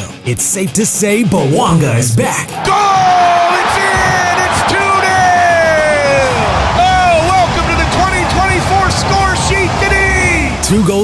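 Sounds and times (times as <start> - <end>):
man shouting excitedly: 1.8 - 10.7
stadium crowd cheering: 2.5 - 11.0.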